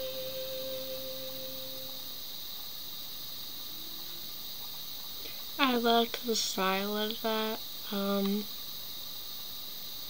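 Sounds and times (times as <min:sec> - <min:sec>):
held note of pop song: 0:00.0 - 0:02.0
faint steady hiss: 0:00.0 - 0:10.0.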